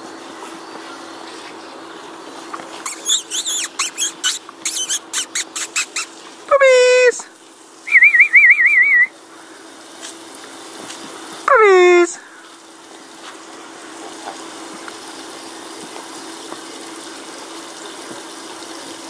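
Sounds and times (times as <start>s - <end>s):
puppies yipping: 2.8s - 6.2s
puppy squealing: 2.8s - 6.2s
warbling whistle-like tone: 7.9s - 9.1s.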